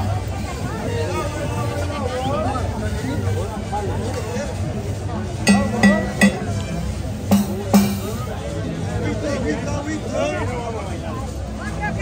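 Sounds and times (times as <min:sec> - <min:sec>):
crowd chatter: 0:00.0 - 0:12.0
drums struck: 0:05.5 - 0:08.4.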